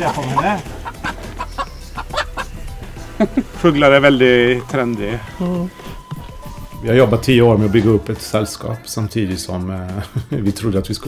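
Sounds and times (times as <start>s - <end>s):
chickens clucking: 0.0s - 8.7s.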